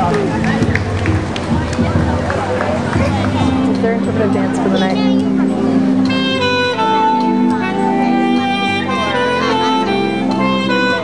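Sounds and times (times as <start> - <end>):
crowd chatter: 0.0 - 11.0
jazz band playing: 0.0 - 11.0.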